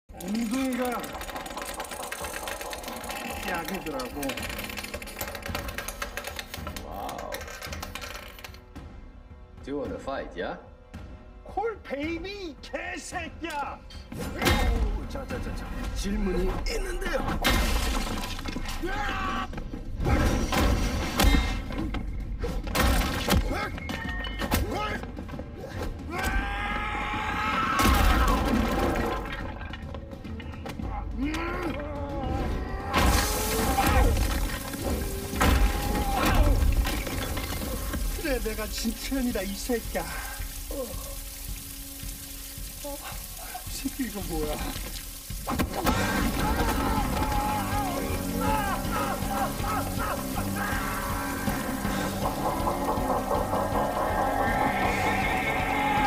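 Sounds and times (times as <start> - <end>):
man yelling: 46.2 - 51.5.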